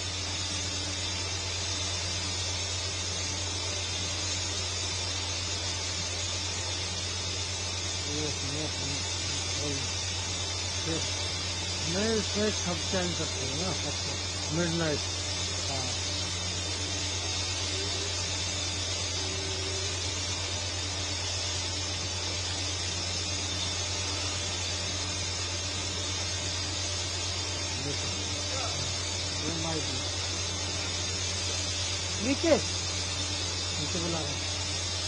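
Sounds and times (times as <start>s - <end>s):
high hiss: 0.0s - 35.0s.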